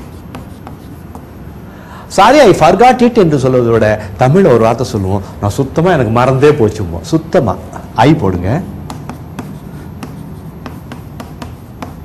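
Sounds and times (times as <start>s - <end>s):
chalk writing on chalkboard: 0.0s - 1.3s, 8.8s - 12.0s.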